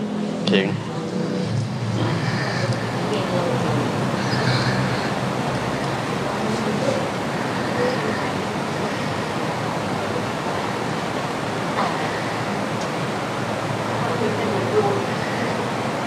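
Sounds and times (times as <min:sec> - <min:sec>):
faint voices: 0:00.0 - 0:16.0
steady rushing noise: 0:00.0 - 0:16.0.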